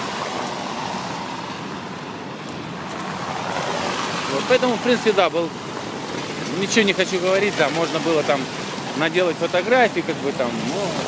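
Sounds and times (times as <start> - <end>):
road traffic hiss: 0.0 - 11.0.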